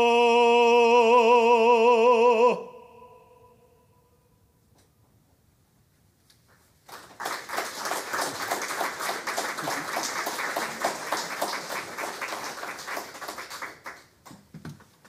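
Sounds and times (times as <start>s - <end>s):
audience applauding: 6.8s - 14.2s.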